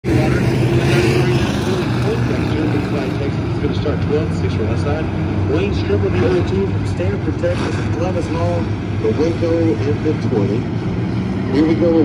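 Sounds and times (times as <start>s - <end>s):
stock car engines droning: 0.0s - 12.0s.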